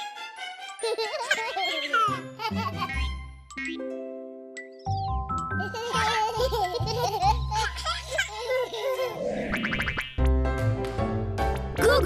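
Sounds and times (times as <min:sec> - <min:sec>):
children's cartoon music: 0:00.0 - 0:12.0
babies giggling and babbling: 0:00.8 - 0:03.2, 0:05.6 - 0:09.4.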